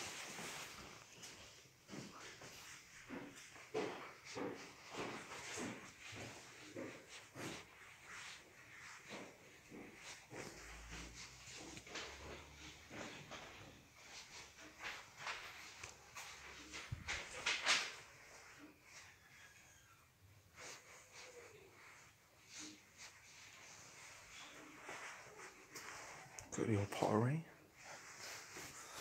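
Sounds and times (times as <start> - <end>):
soft footsteps: 0.0 - 19.5, 20.4 - 29.0.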